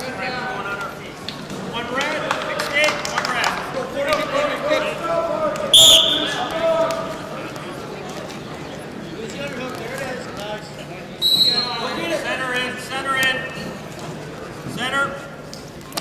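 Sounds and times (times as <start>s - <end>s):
spectators talking: 0.0s - 16.0s
referee's whistle blast: 5.8s - 6.4s, 11.2s - 11.9s.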